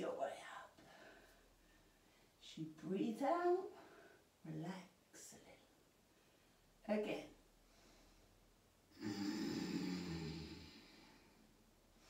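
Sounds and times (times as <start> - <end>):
person exhaling: 8.9 - 11.4.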